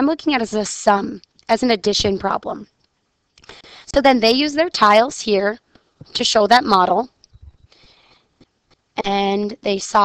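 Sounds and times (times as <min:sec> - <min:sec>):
soft intake of breath: 0:03.5 - 0:03.9, 0:07.6 - 0:08.4
faint low knocks: 0:07.4 - 0:07.7.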